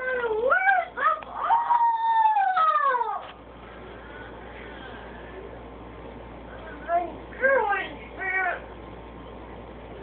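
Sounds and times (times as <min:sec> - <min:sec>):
young child whining cry: 0:01.4 - 0:03.3.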